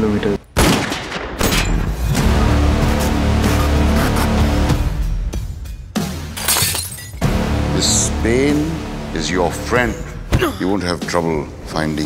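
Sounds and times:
dark trailer music: 0:01.2 - 0:06.4, 0:07.2 - 0:12.0
glass shattering on hard floor: 0:06.3 - 0:07.2.

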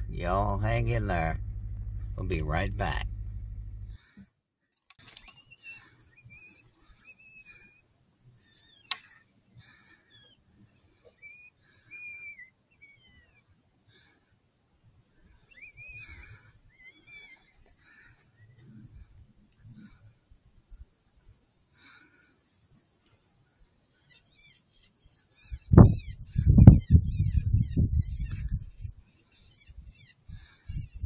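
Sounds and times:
sharp click: 0:08.9 - 0:09.1.

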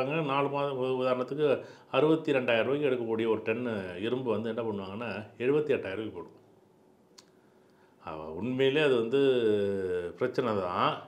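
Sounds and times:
man speaking: 0:00.0 - 0:06.4, 0:08.0 - 0:11.0
faint click: 0:07.1 - 0:07.8.

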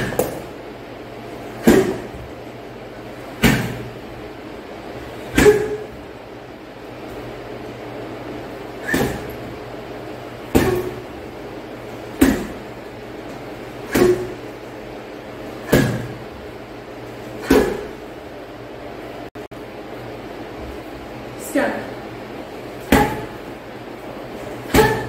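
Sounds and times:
kicks thudding on punching bag: 0:01.6 - 0:02.4, 0:03.4 - 0:04.0, 0:05.3 - 0:05.9, 0:08.8 - 0:09.4, 0:10.5 - 0:11.1, 0:12.1 - 0:12.7, 0:13.9 - 0:14.4, 0:15.6 - 0:16.3, 0:17.4 - 0:18.0, 0:22.9 - 0:23.4, 0:24.7 - 0:25.0.

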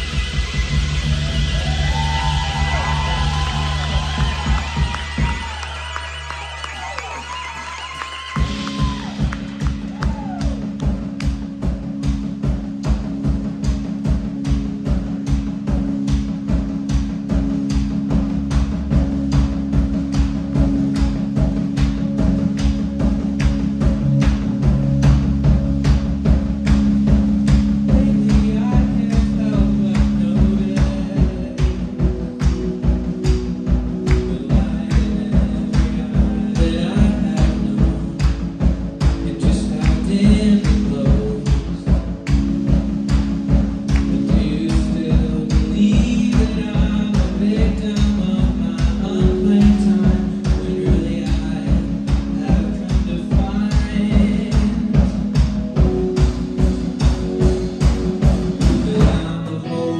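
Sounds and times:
drum beat: 0:00.0 - 0:59.4
bass: 0:00.0 - 0:59.9
keyboard chords: 0:08.4 - 0:59.9
lead vocal singing: 0:27.8 - 0:32.6, 0:34.0 - 0:55.8, 0:58.6 - 0:59.9.

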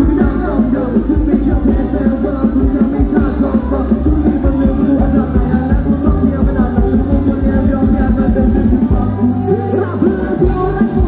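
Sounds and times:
live band dance music: 0:00.0 - 0:11.0.

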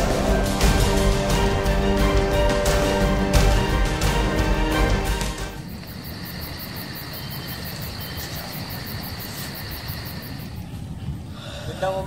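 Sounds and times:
insects droning with fast pulsing: 0:05.5 - 0:11.3.

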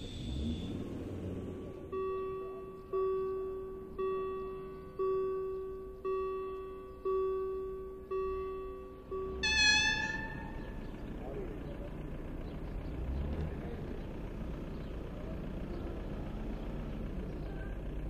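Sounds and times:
level crossing bell ringing: 0:01.8 - 0:11.2
train horn toot: 0:09.4 - 0:10.8.

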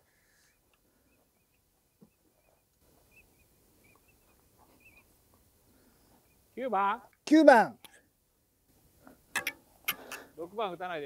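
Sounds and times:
high bird chirps: 0:01.1 - 0:05.1.

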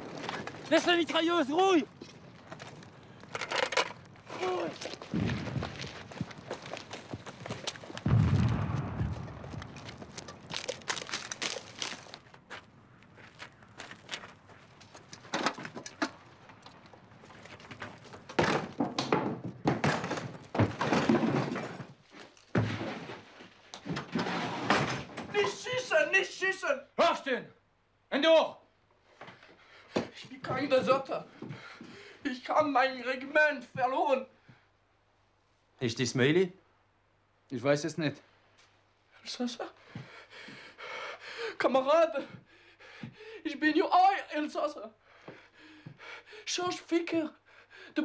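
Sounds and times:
thuds and clattering impacts: 0:17.2 - 0:23.2.

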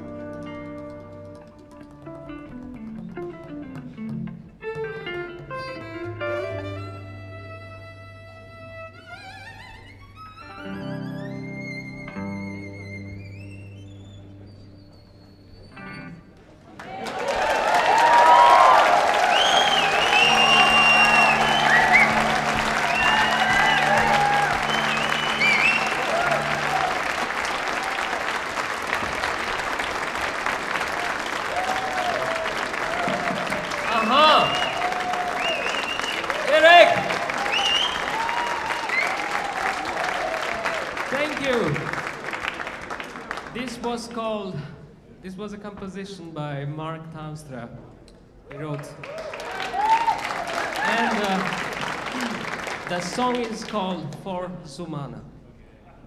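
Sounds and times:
audience applause and cheering: 0:16.6 - 0:43.7, 0:48.5 - 0:53.9
band playing: 0:18.0 - 0:42.5.

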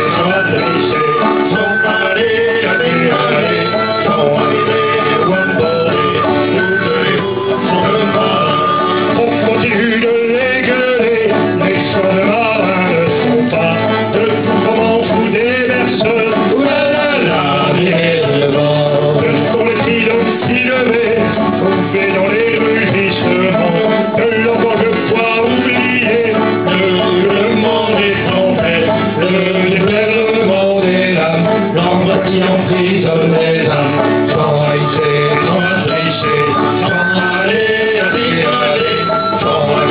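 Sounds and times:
whistle melody of held notes: 0:00.0 - 0:09.8, 0:34.6 - 0:39.9
acoustic guitar: 0:00.0 - 0:39.9.

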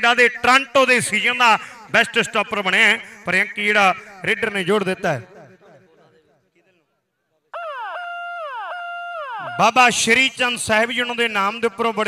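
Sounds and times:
loud siren-like tone: 0:07.5 - 0:09.8.

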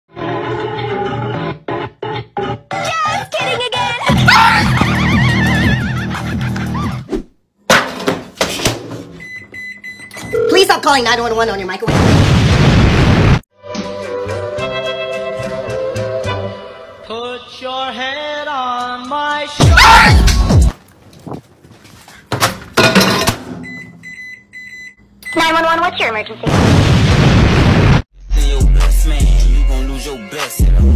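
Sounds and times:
music: 0:00.1 - 0:07.1, 0:13.5 - 0:20.7, 0:28.2 - 0:30.9
microwave beep: 0:09.2 - 0:10.8, 0:23.6 - 0:25.6.

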